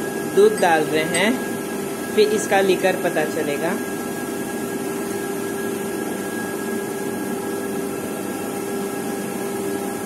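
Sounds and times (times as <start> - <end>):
machine whirring hum: 0.0 - 10.0.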